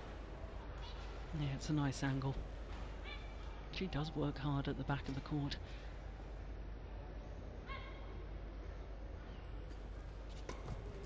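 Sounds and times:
arena background hum: 0:00.0 - 0:11.0.

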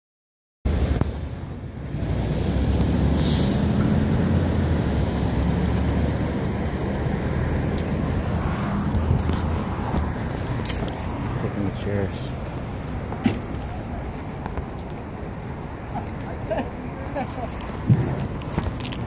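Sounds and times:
street traffic rumble: 0:00.7 - 0:19.0.

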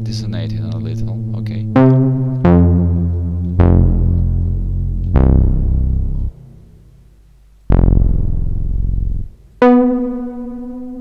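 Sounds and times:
higher steady synth note: 0:00.9 - 0:06.7, 0:07.7 - 0:11.0
deep synth bass note: 0:00.9 - 0:06.8, 0:07.7 - 0:11.0.

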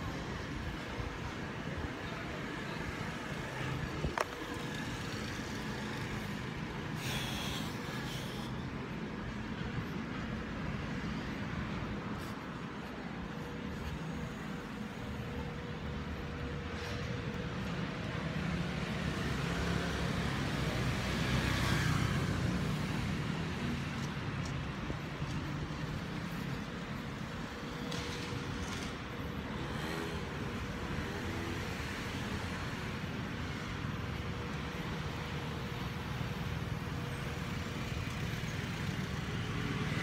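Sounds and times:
road vehicles passing: 0:00.0 - 0:40.0.

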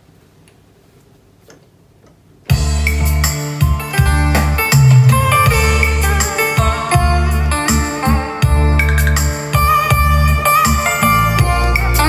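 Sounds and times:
keyboard playing over bass: 0:02.5 - 0:12.0.

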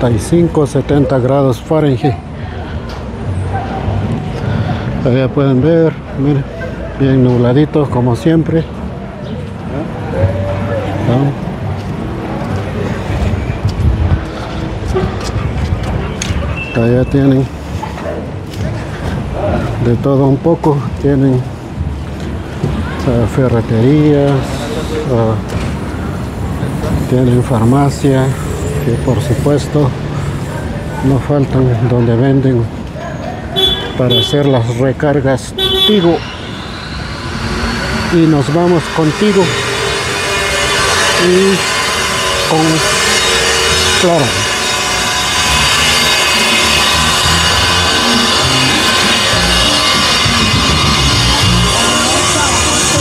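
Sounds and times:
faint voices of passers-by: 0:00.0 - 0:53.0
low rumble of traffic: 0:00.0 - 0:53.0.

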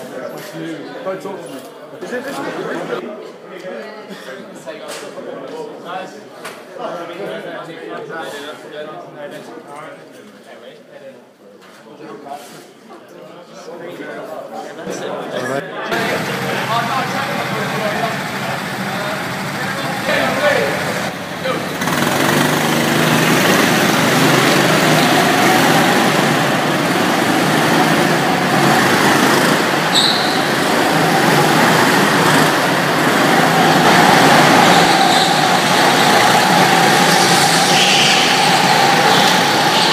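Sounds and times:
go-kart engines whining drone: 0:15.9 - 0:39.9.

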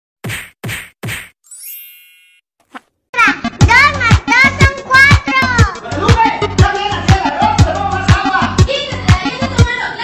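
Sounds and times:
shimmering sparkle chime: 0:01.5 - 0:02.4.

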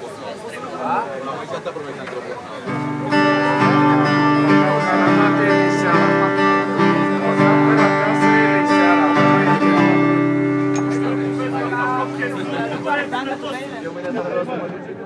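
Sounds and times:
acoustic guitar strumming chords: 0:02.6 - 0:14.9.

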